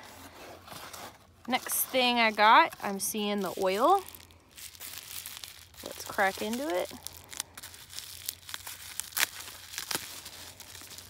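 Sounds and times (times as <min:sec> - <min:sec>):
bubble wrap crinkling and crackling: 0:00.0 - 0:11.0.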